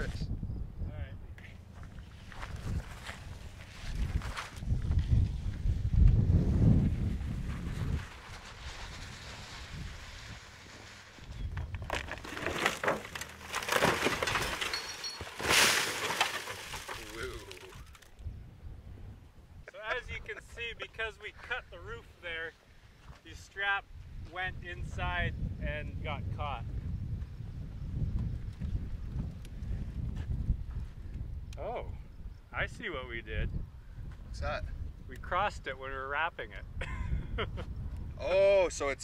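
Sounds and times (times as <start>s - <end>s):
wind buffeting microphone: 0.0s - 12.0s, 17.3s - 21.1s, 23.8s - 39.0s.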